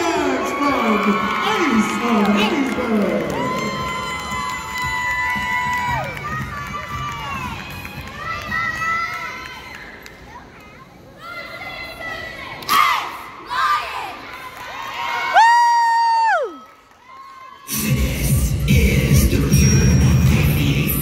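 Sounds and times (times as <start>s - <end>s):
girls shouting and cheering: 0.0s - 10.4s, 11.1s - 17.7s
loud music: 17.7s - 21.0s.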